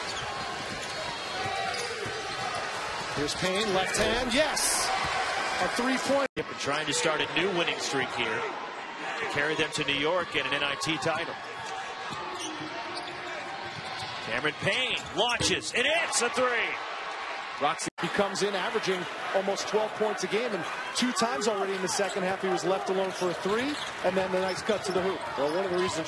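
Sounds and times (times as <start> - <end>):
crowd noise: 0.0 - 26.0.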